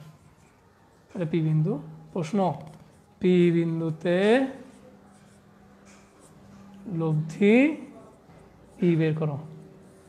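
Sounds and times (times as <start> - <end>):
marker writing on whiteboard: 0.0 - 10.0.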